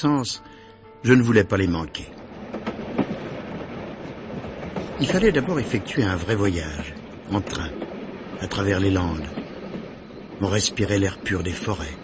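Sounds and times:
train rumbling along rails: 1.2s - 12.0s
wheel clacks over rail joints: 2.1s - 12.0s.

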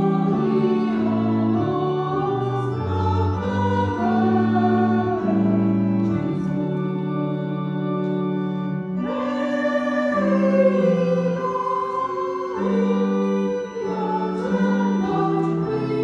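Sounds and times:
small choir singing slow melody: 0.0s - 8.2s, 8.8s - 16.0s.

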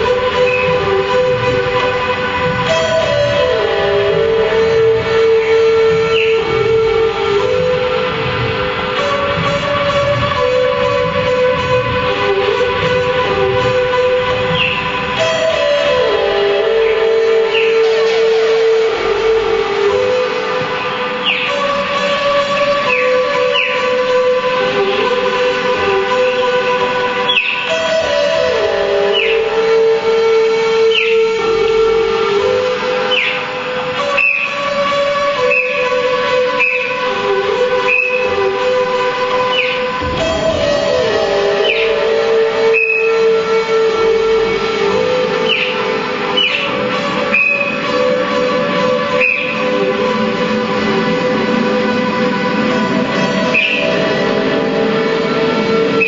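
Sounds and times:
electronic drone through amplifiers: 0.0s - 56.0s
noisy rumbling bed: 0.0s - 56.0s.

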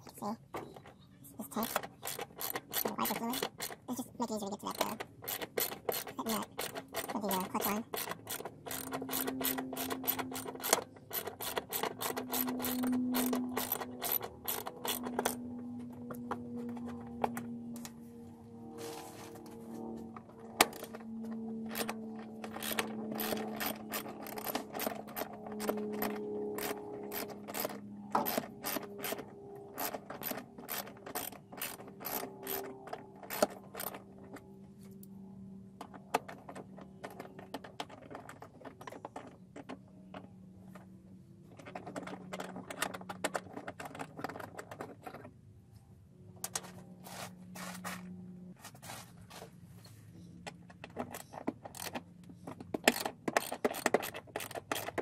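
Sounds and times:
socket ratchet clicking: 1.6s - 3.8s, 4.7s - 15.4s, 52.8s - 55.0s.

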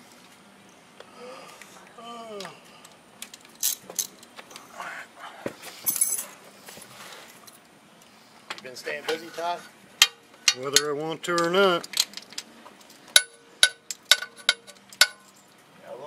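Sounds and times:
metallic clinks and jingle: 5.8s - 6.4s.

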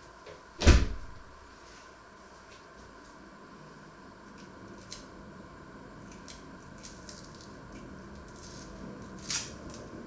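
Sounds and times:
loud thud: 0.6s - 1.3s.

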